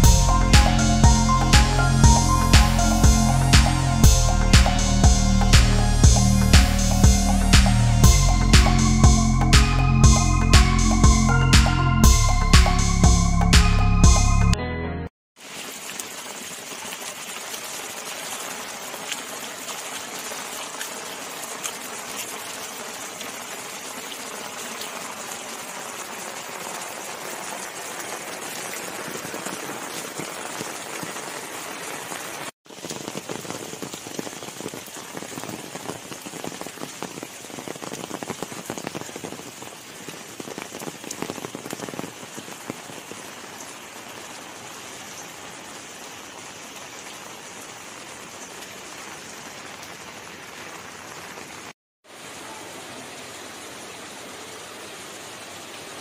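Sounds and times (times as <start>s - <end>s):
rain on stone paving: 0.0s - 12.8s, 15.4s - 56.0s.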